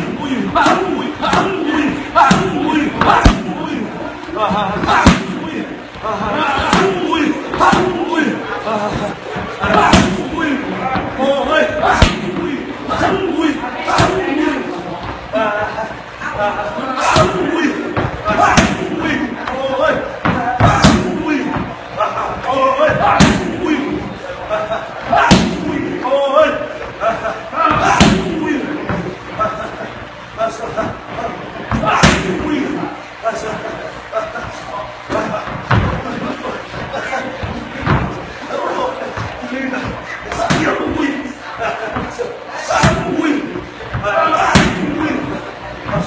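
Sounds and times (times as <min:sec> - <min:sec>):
strikes smacking kick pads: 0:00.0 - 0:03.7, 0:04.8 - 0:05.4, 0:09.6 - 0:10.4, 0:11.9 - 0:12.4, 0:17.1 - 0:19.0, 0:20.2 - 0:21.8, 0:22.8 - 0:23.6, 0:25.2 - 0:25.8, 0:27.7 - 0:29.1, 0:31.8 - 0:32.4, 0:44.0 - 0:45.0
voices: 0:00.0 - 0:46.0.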